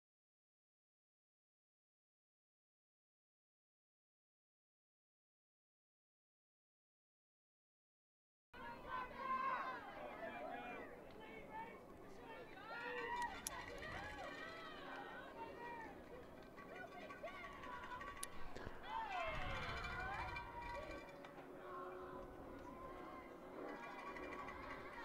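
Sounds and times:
distant voices calling out and chanting: 8.6s - 25.0s.

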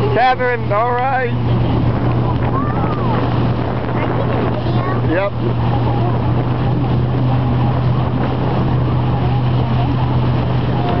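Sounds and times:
boat engine drone: 0.0s - 11.0s
wind and water rushing: 0.0s - 11.0s.

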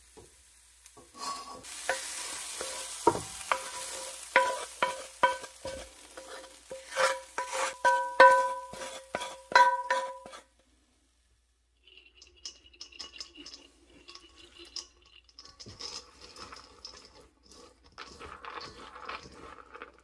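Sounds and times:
faint sizzle: 0.0s - 20.0s
spatula scraping skillet: 0.2s - 10.8s, 11.9s - 20.0s
spatula knocking on steel bowl: 7.4s - 10.2s.

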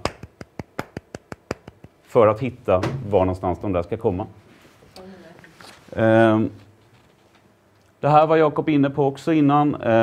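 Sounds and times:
light hand claps: 0.0s - 2.0s.

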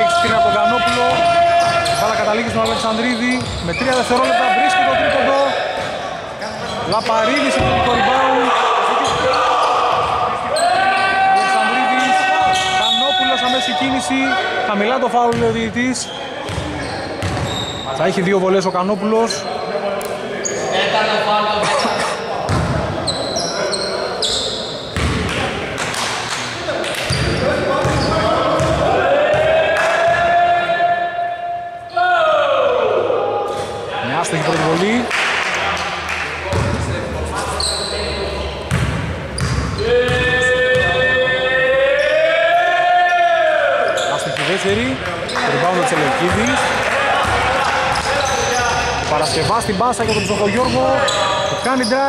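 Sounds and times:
sneaker squeaks: 0.7s - 10.8s, 11.4s - 13.9s, 15.3s - 19.7s, 20.4s - 20.8s, 21.6s - 25.4s, 26.3s - 28.8s, 36.5s - 41.0s, 43.8s - 52.0s
long drawn-out shout: 39.8s - 43.9s.

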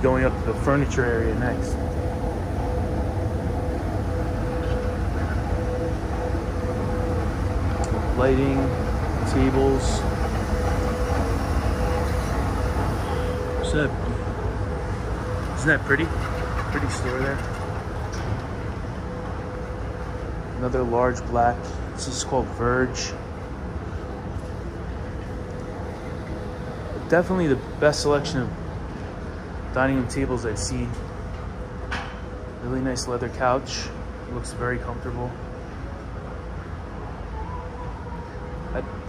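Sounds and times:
escalator rumbling: 0.0s - 39.0s
faint hum: 0.0s - 39.0s.

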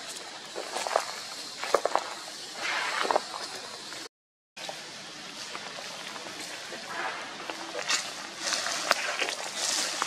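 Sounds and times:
footsteps crunching dry leaves: 0.0s - 4.0s, 5.4s - 10.0s
outdoor background noise: 0.0s - 10.0s.

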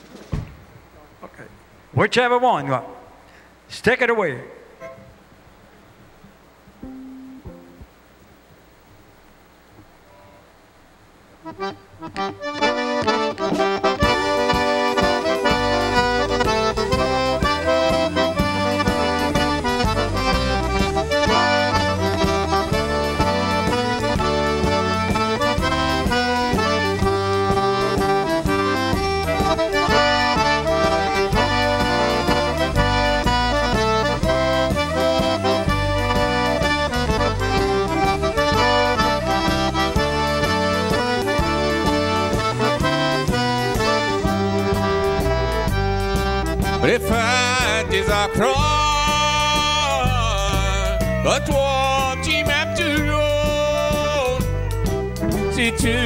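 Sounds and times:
drums: 0.0s - 2.0s, 4.6s - 56.0s
bass: 5.3s - 56.0s
button accordion: 11.4s - 56.0s.

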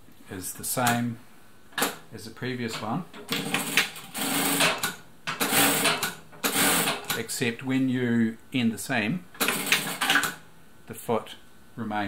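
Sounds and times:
sewing machine sewing: 3.3s - 7.2s, 9.4s - 10.4s.

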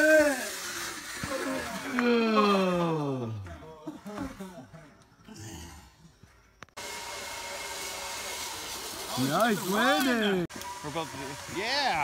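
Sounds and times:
zip-line trolley whirring on cable: 0.0s - 2.1s, 6.8s - 12.0s.

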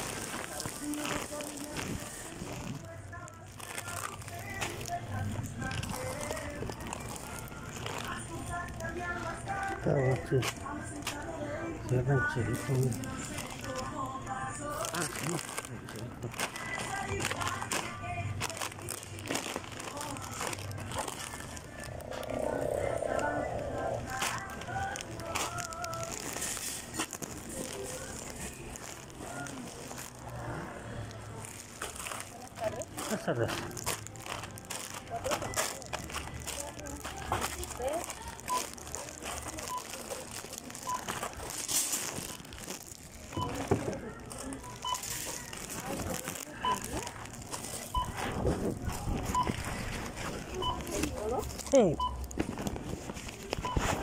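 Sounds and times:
indistinct voices: 0.0s - 52.4s
plastic snack bags crinkling: 0.0s - 54.0s
store background noise: 0.0s - 54.0s.

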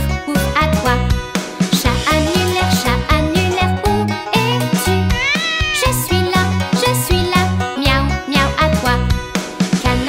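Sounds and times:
bouncy children's song music: 0.0s - 10.0s
cat meow: 5.1s - 6.0s.

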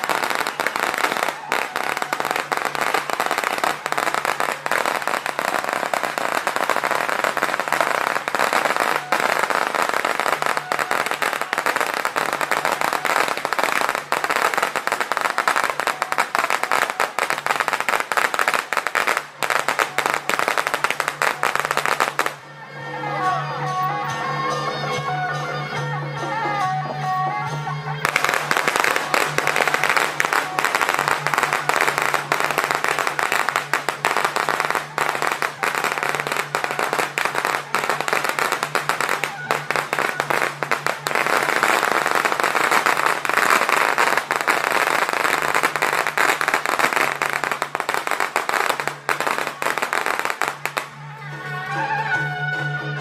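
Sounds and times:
firecrackers crackling: 0.0s - 22.6s, 27.5s - 52.6s.

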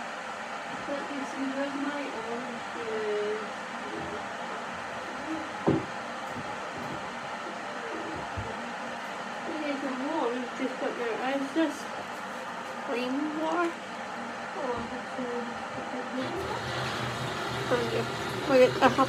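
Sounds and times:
kettle heating water hiss: 12.6s - 19.0s.

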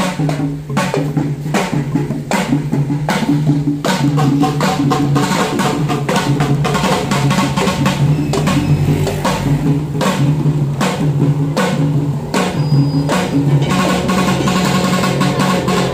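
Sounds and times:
children beating tin can drums: 0.0s - 15.9s.

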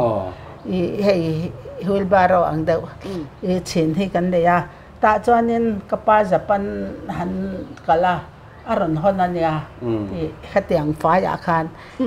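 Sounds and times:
woman speaking: 0.6s - 12.0s.

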